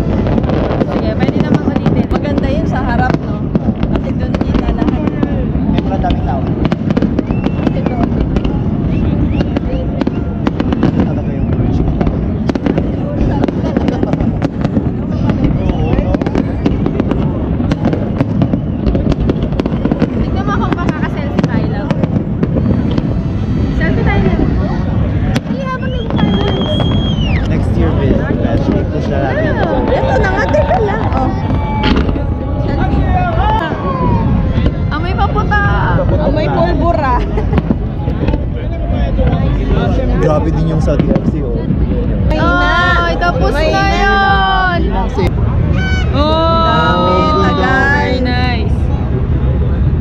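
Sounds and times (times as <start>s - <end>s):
crowd voices: 0.0s - 50.0s
fireworks bangs and crackles: 0.0s - 50.0s.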